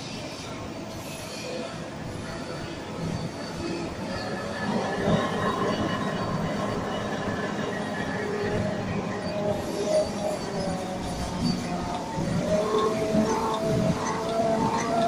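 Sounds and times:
machine rollers running: 0:04.5 - 0:15.0.

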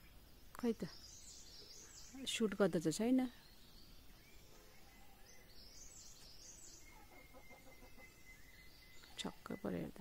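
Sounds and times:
outdoor background noise: 0:00.0 - 0:10.0
small birds chirping: 0:00.0 - 0:10.0.

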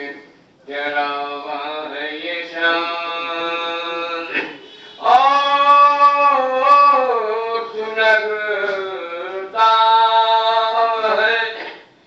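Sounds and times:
man chanting: 0:00.0 - 0:11.7.

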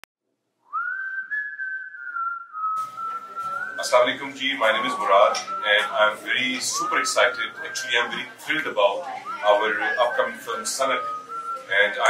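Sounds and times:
sliding whistled note: 0:00.7 - 0:12.0
soft background music: 0:03.4 - 0:12.0.

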